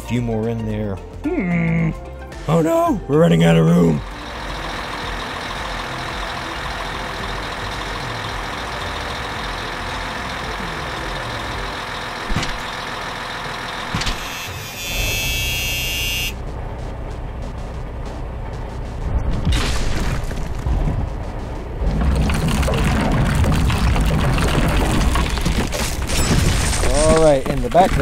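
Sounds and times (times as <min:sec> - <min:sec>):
heavy vehicle engine running: 0:03.0 - 0:28.0.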